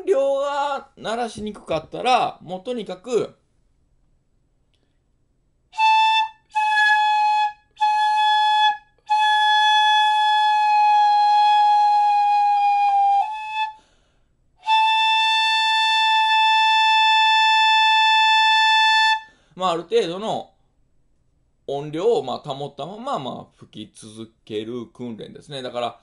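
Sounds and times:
bamboo flute high note: 0:05.8 - 0:13.8, 0:14.6 - 0:19.3.

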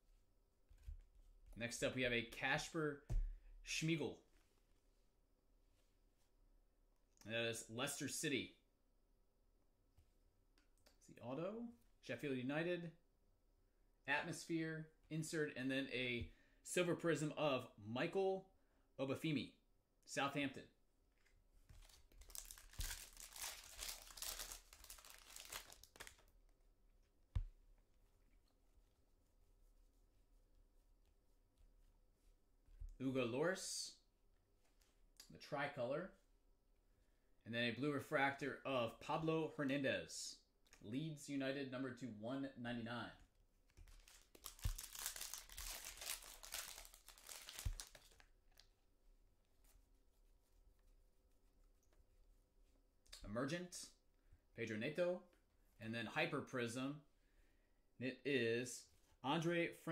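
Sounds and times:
foil pack tearing and crinkling: 0:22.2 - 0:26.2, 0:44.0 - 0:48.2.

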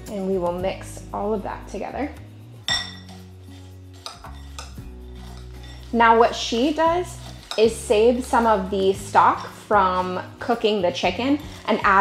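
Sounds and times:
fork scraping and stirring: 0:02.5 - 0:08.6, 0:10.4 - 0:12.0
fork clinking glass bowl: 0:02.7 - 0:05.9.

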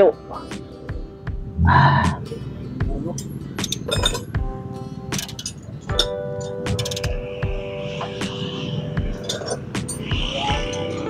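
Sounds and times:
ratchet wrench clinking: 0:03.2 - 0:04.3, 0:05.2 - 0:07.2, 0:09.1 - 0:11.0.

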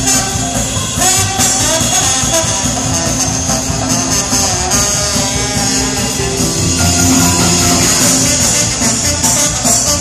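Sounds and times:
live jazz band playing: 0:00.0 - 0:10.0
trombone: 0:00.0 - 0:10.0
person singing: 0:06.2 - 0:09.0.

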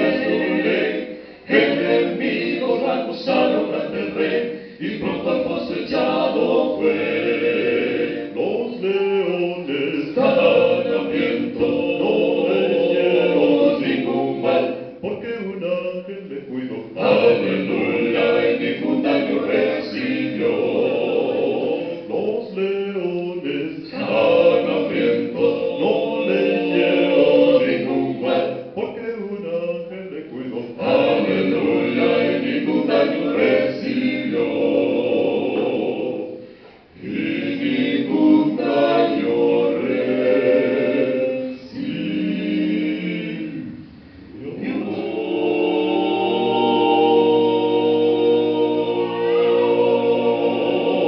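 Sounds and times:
male vocal quartet singing in harmony: 0:00.0 - 0:51.0.

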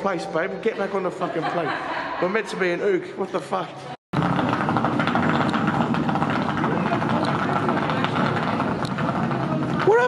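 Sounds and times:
suitcase wheels rattling on paving: 0:04.2 - 0:10.0.

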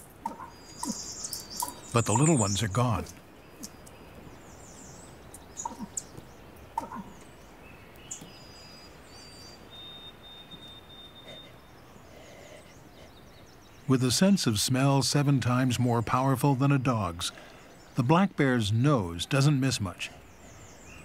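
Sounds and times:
bird chirps and whistles: 0:09.2 - 0:11.5.

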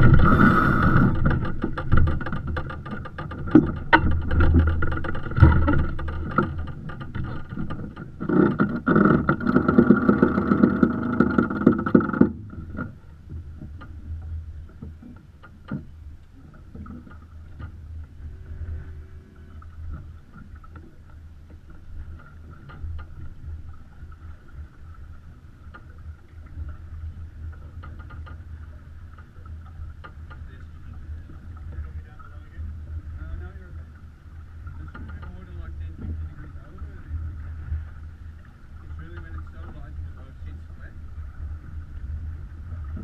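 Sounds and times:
wind rumble: 0:00.0 - 0:15.0, 0:15.9 - 0:43.0
water rushing: 0:00.0 - 0:15.2, 0:15.9 - 0:43.0.

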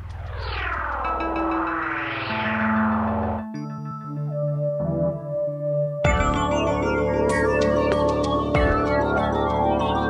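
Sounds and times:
filtered synth sweep: 0:00.0 - 0:05.7
synthesizer electronica: 0:00.0 - 0:10.0.

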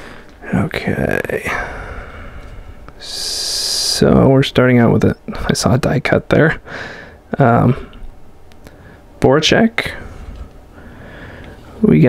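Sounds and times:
person drawing a breath: 0:06.7 - 0:07.2, 0:10.0 - 0:11.7.

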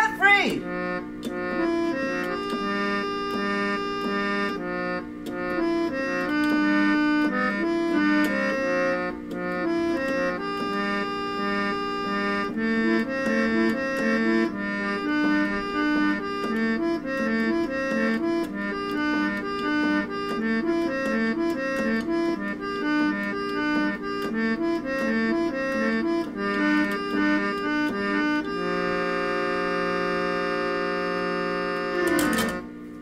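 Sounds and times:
reed organ playing chords: 0:00.0 - 0:33.0.

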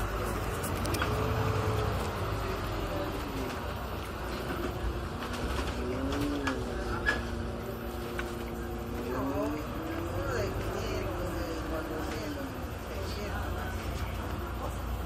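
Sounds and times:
bus engine rumble and whine: 0:00.0 - 0:15.0.

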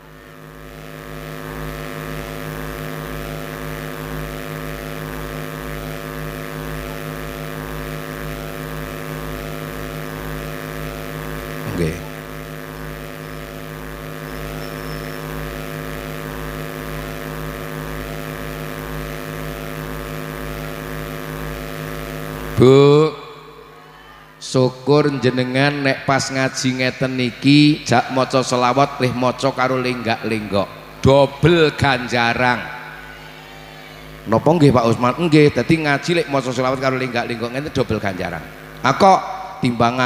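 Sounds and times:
sustained electronic keyboard chord: 0:00.0 - 0:40.0
man's voice: 0:11.6 - 0:12.2, 0:22.6 - 0:23.4, 0:24.4 - 0:32.9, 0:34.3 - 0:40.0.

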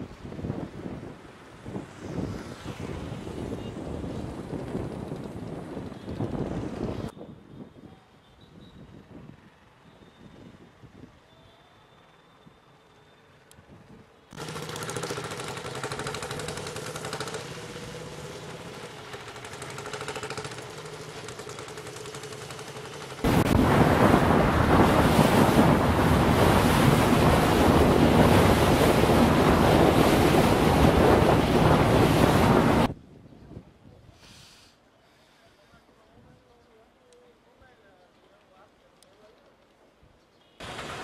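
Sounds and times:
wind rushing on microphone: 0:00.0 - 0:11.2, 0:23.2 - 0:34.2
street traffic: 0:00.3 - 0:23.3, 0:36.6 - 0:41.0
sea noise: 0:15.8 - 0:33.0, 0:40.6 - 0:41.0.

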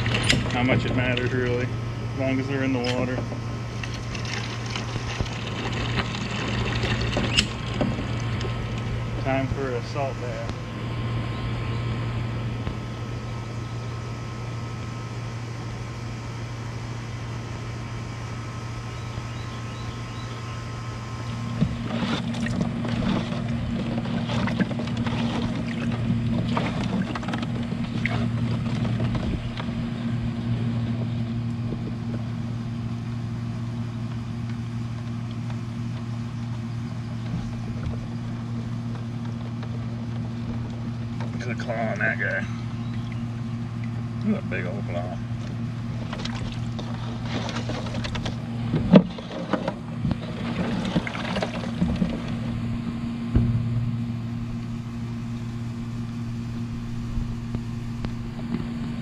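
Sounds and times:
water splashing and sloshing: 0:00.0 - 0:10.9, 0:21.0 - 0:33.0, 0:34.4 - 0:59.0
low mechanical hum: 0:00.0 - 0:59.0.

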